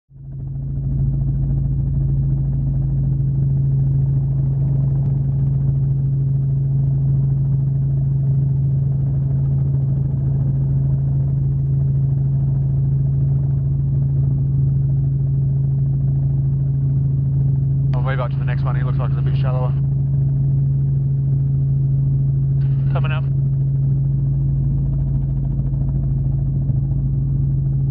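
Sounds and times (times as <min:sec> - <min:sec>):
helicopter cabin drone: 0:00.1 - 0:27.9.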